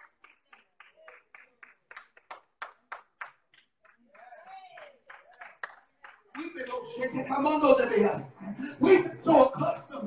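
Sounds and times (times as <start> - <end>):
hands clapping in rhythm: 0.0 - 6.7.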